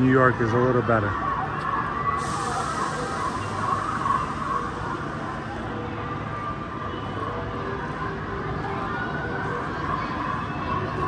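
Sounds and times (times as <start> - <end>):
faint distant voices: 0.0 - 11.0
thin high hiss: 2.2 - 5.4.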